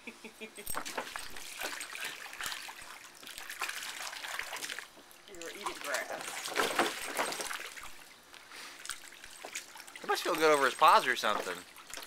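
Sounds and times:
water trickling and splashing: 0.7s - 12.0s.

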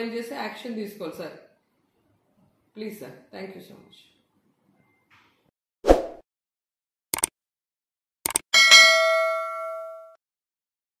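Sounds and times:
bright bell chime: 8.6s - 10.2s.

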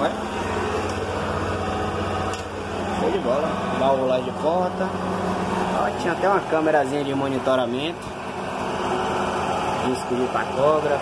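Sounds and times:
engine idling hum: 0.0s - 11.0s.

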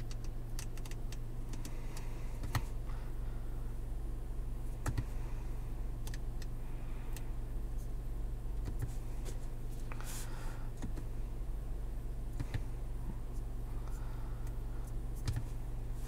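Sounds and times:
car cabin idling hum: 0.0s - 16.0s.

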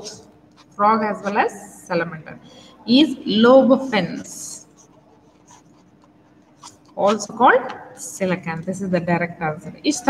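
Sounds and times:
pen scratching on paper: 0.5s - 1.5s, 3.6s - 7.8s.

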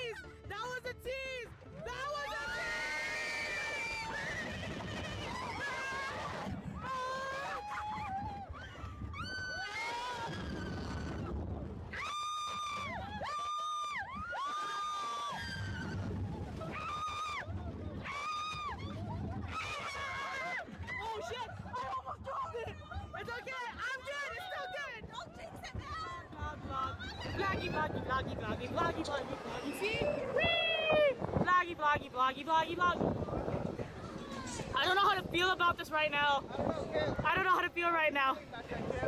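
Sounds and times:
wind noise on microphone: 1.6s - 39.0s
riders screaming: 2.2s - 21.6s.

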